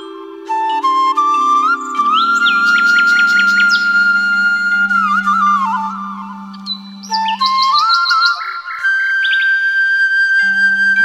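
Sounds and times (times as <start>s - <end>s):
bamboo flute melody: 0.0s - 11.0s
high bird chirps: 1.6s - 5.8s, 6.4s - 9.7s.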